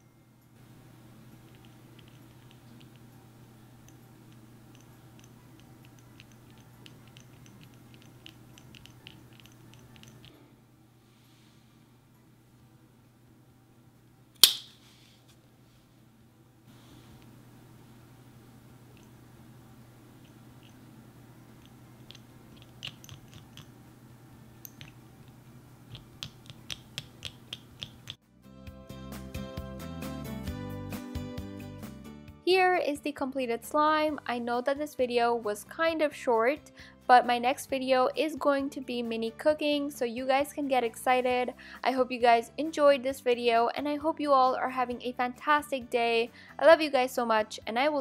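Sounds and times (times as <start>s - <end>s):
stirrer clicking in sticky glue: 3.8s - 10.3s, 21.6s - 23.8s, 24.6s - 28.2s.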